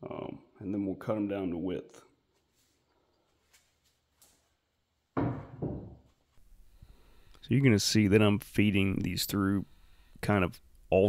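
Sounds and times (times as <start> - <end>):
faint steady hiss: 6.2 - 11.0.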